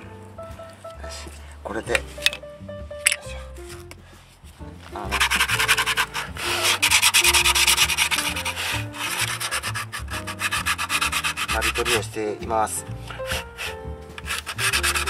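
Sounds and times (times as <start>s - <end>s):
sandpaper rubbing on brake pad: 5.1s - 12.1s, 13.2s - 15.0s.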